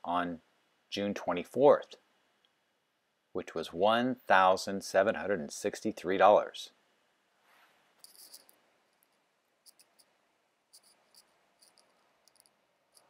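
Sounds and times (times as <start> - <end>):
marker squeaking on whiteboard: 10.7 - 13.0.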